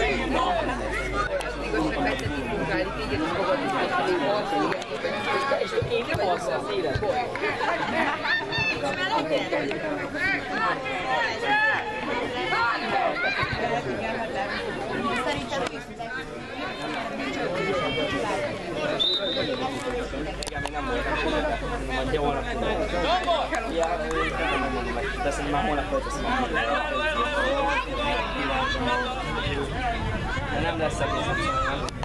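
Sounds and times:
voices calling and shouting: 0:00.0 - 0:32.0.

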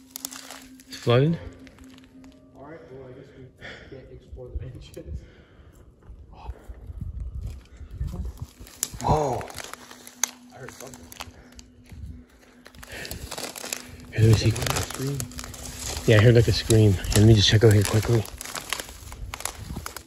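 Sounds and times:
footsteps through dry brush: 0:00.0 - 0:02.6, 0:07.2 - 0:20.0
low voices: 0:14.1 - 0:18.4.

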